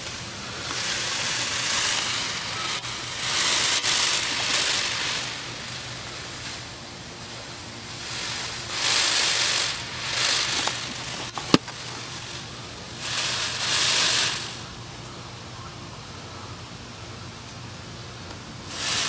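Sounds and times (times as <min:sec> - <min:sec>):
peacock quills rattling: 0:00.0 - 0:14.8, 0:18.7 - 0:19.0.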